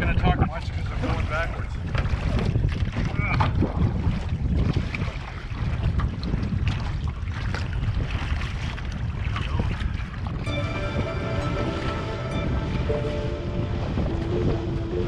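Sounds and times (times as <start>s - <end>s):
choppy water: 0.0s - 15.0s
wind buffeting microphone: 0.0s - 15.0s
canoe paddle splashes: 0.6s - 15.0s.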